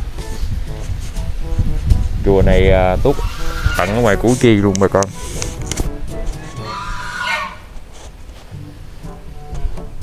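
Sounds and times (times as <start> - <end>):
short bird call: 6.4 - 7.7.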